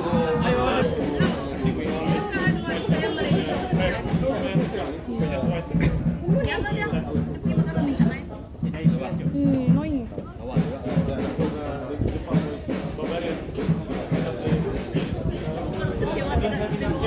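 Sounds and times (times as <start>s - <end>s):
people talking over one another: 0.0s - 17.0s.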